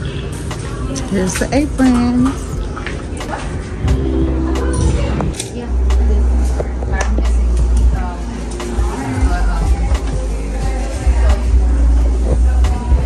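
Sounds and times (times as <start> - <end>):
background chatter: 0.0 - 13.0
music: 0.0 - 13.0
heavy low rumble: 1.7 - 13.0.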